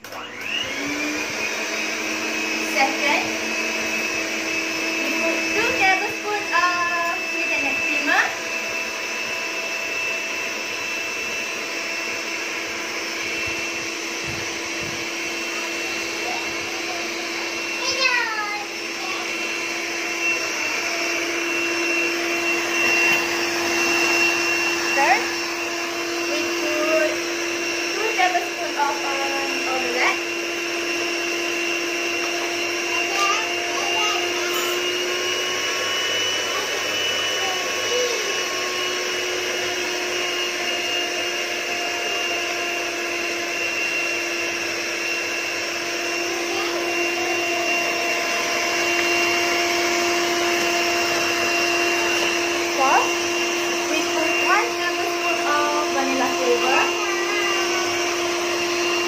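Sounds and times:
electric hand mixer running: 0.0s - 59.0s.

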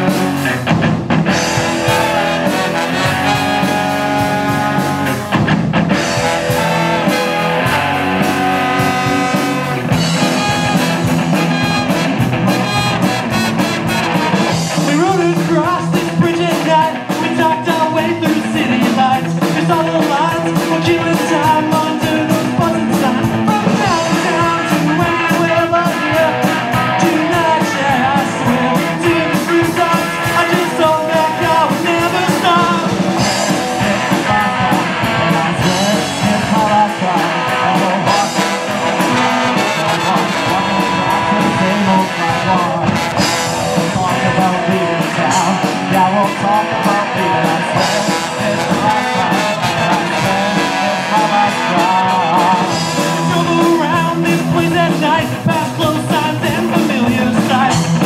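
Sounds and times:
live ska-punk band playing: 0.0s - 58.0s
trumpet and trombone horn lines: 1.4s - 15.1s, 37.8s - 46.1s, 46.8s - 54.1s.

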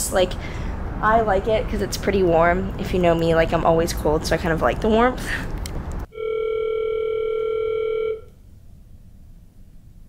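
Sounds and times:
telephone ringback tone: 6.1s - 8.3s.

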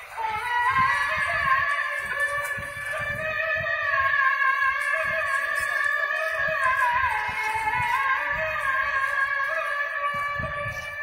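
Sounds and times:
man chanting over loudspeakers: 0.0s - 11.0s.

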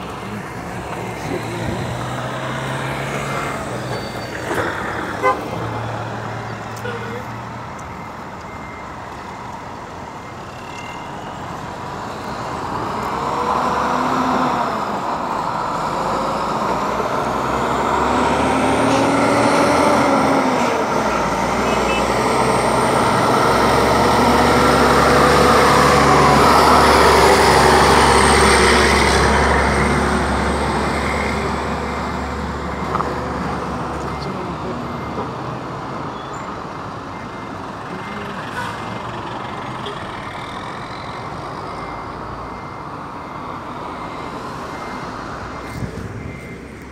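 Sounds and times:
truck diesel engine passing: 0.0s - 46.9s.

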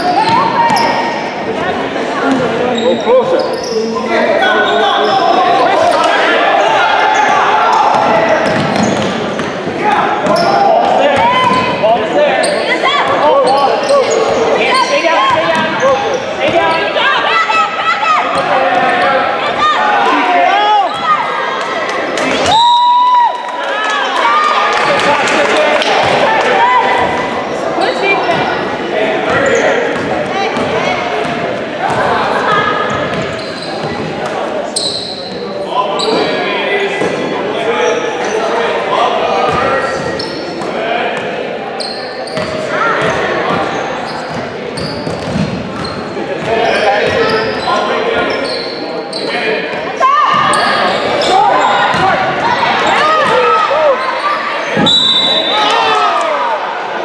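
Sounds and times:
sneakers squeaking on court: 0.0s - 1.6s, 2.7s - 6.0s, 6.6s - 11.8s, 12.4s - 17.0s, 29.3s - 36.4s, 39.5s - 40.7s, 41.8s - 55.6s
echoing voices: 0.0s - 57.0s.

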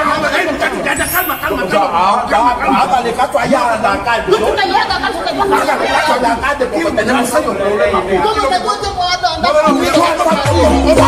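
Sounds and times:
men arguing loudly: 0.0s - 11.0s.

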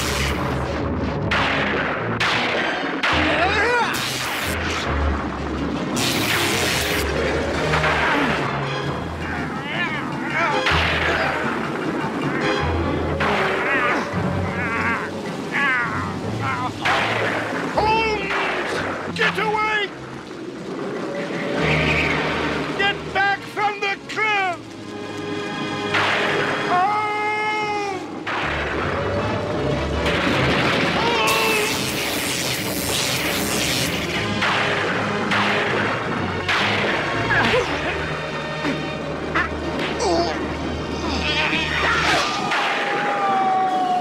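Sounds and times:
dramatic music with low held notes: 0.0s - 44.0s
heavy rain and wind: 0.0s - 44.0s
storm crashes: 28.2s - 37.3s.

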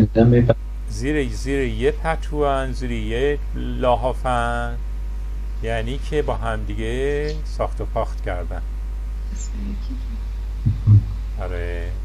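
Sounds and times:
voice drawn-out vowel: 0.0s - 2.0s
steady low hum: 0.0s - 12.0s.

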